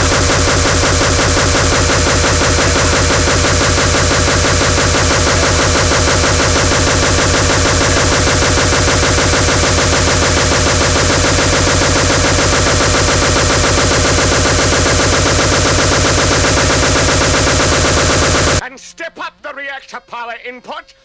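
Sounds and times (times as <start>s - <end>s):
fast distorted electronic beats: 0.0s - 18.6s
spoken voice sample: 18.6s - 21.0s.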